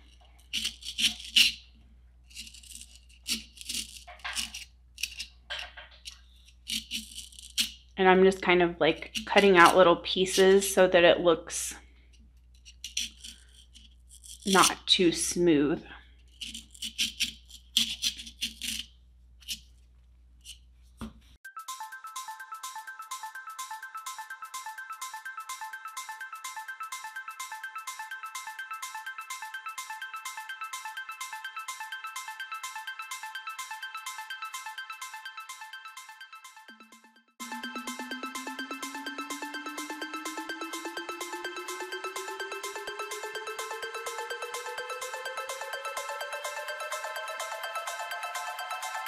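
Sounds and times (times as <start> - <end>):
knife cutting foam: 0.0 - 5.3, 6.0 - 7.9, 12.5 - 14.8, 16.2 - 19.7
plucked background music: 8.0 - 11.6, 21.4 - 49.0.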